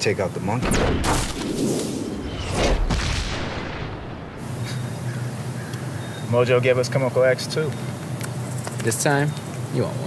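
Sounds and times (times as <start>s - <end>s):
brief whoosh: 1.3s - 4.4s.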